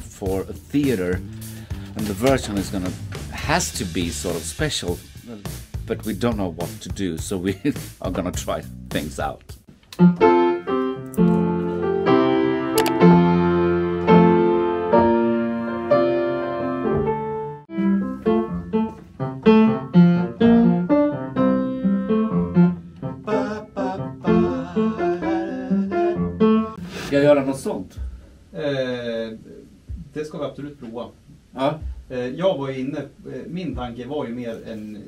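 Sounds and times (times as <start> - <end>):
piano chords: 10.0 - 26.9.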